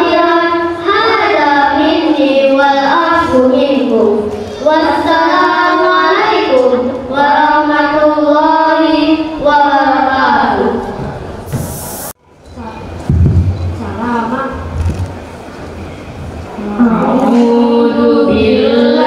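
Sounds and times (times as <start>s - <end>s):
boys singing over pa system: 16.6s - 19.0s.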